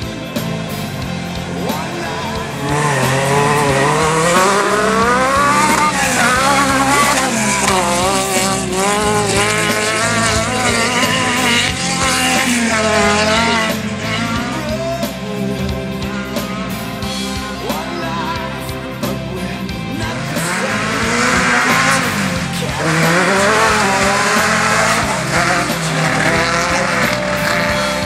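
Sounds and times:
buggy engine revving: 0:00.0 - 0:28.0.

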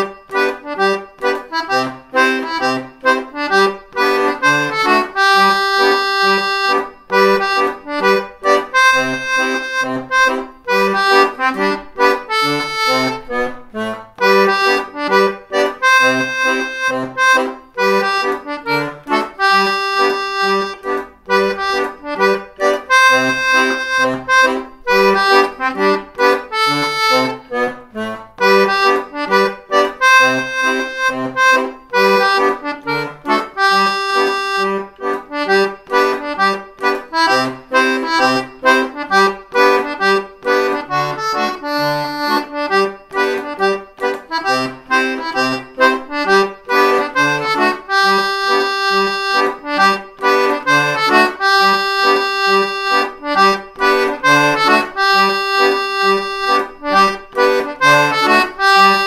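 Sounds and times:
button accordion playing a lively tune: 0:00.0 - 0:59.0.

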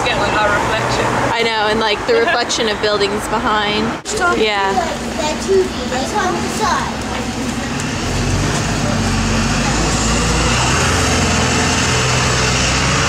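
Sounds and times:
road noise: 0:00.0 - 0:13.0
vehicle engine humming: 0:00.0 - 0:13.0.

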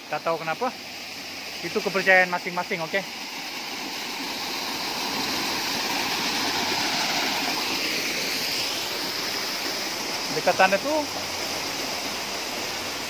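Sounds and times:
waterfall and stream rushing: 0:00.0 - 0:13.0.

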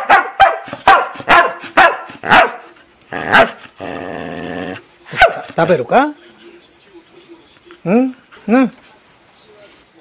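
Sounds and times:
dog barking: 0:00.0 - 0:02.7, 0:03.3 - 0:03.6, 0:05.1 - 0:05.6
dog growling: 0:03.1 - 0:04.9.

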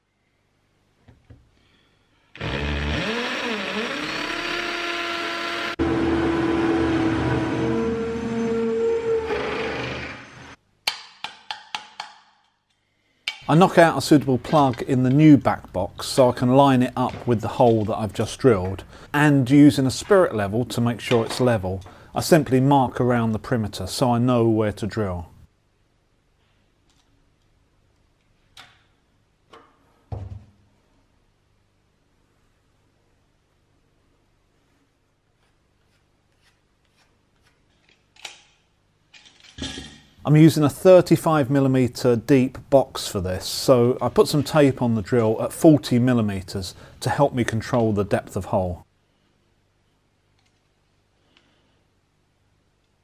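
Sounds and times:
drill drilling into masonry: 0:02.3 - 0:10.6.

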